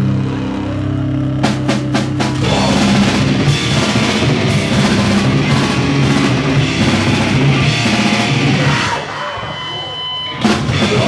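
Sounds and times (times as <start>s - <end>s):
grindcore band playing live: 0.0s - 11.0s
held guitar tone: 0.0s - 11.0s.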